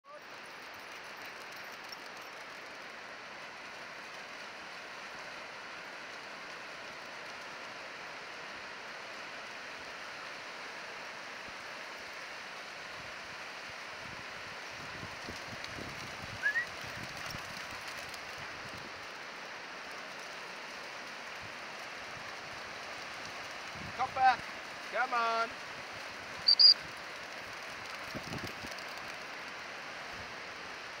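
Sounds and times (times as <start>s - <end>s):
surf washing onto beach: 12.1s - 31.0s
high rising chirp: 26.4s - 26.8s.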